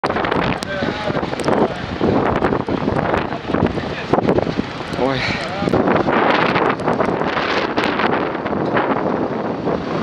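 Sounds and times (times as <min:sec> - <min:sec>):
gusty wind buffeting microphone: 0:00.0 - 0:10.0.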